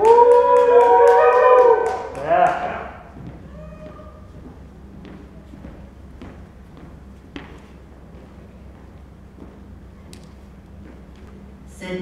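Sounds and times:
hand clapping: 0.0 - 2.9
people cheering and whooping: 0.0 - 4.3.

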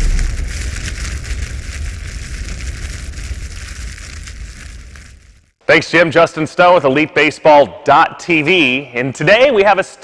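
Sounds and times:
boom: 0.0 - 5.5
fire crackling: 0.0 - 5.6
low rumble: 0.0 - 5.6.

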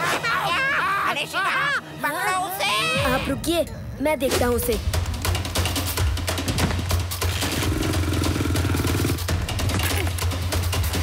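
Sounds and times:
fast action music: 0.5 - 11.0.

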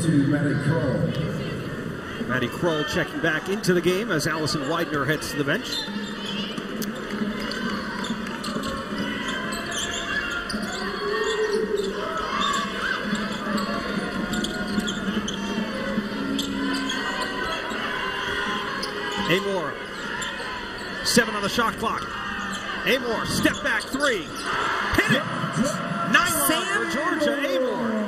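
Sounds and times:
crowd chatter: 0.0 - 28.0.

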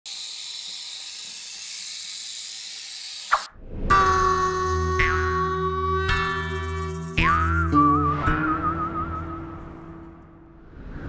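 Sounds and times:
rattlesnake rattling: 0.1 - 3.4, 6.1 - 7.8.

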